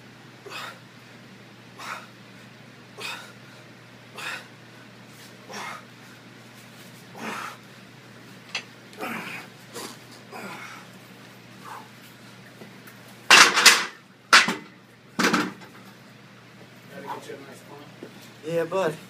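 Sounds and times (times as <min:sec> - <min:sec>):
heavy gasping breaths: 0:01.8 - 0:02.1, 0:03.0 - 0:04.5, 0:05.4 - 0:06.3, 0:07.1 - 0:07.7.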